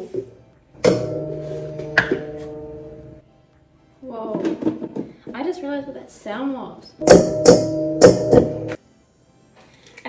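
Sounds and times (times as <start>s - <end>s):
two-note chime: 1.0s - 3.2s.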